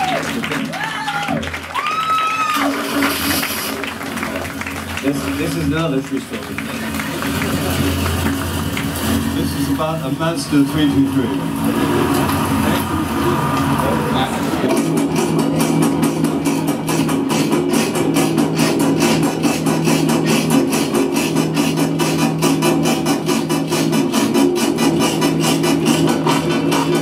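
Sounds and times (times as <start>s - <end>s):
low drone: 2.5s - 27.0s.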